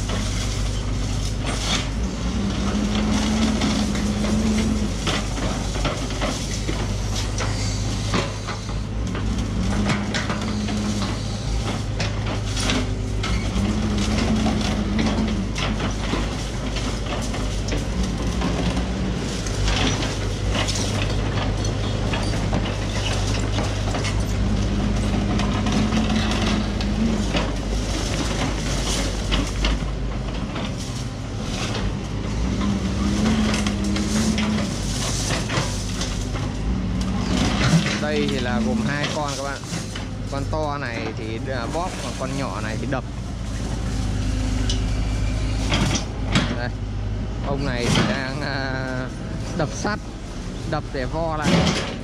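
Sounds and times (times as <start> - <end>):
concrete and steel crunching: 0.0 - 52.0
diesel engine running: 0.0 - 52.0
hydraulic whine: 0.0 - 52.0.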